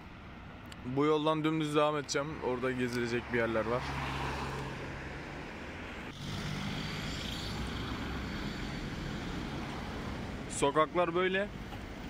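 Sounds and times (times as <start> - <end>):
car engines humming: 0.0 - 12.0
road noise of passing cars: 0.0 - 12.0.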